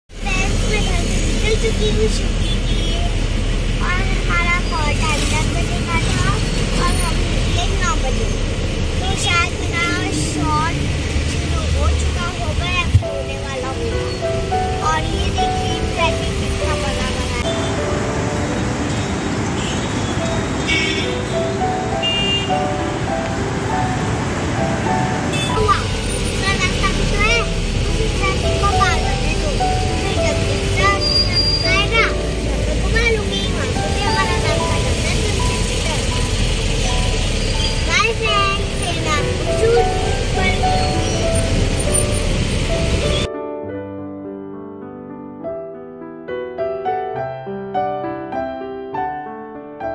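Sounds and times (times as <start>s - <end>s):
auto-rickshaw engine running: 0.1s - 43.3s
road and traffic noise: 0.1s - 43.3s
girl chattering: 9.0s - 17.8s, 25.4s - 36.4s, 37.6s - 41.4s
music: 9.1s - 19.4s, 20.1s - 49.9s.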